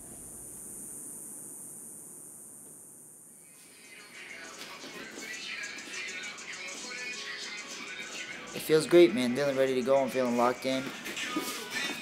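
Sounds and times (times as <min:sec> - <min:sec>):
constant high hiss: 0:00.0 - 0:08.0.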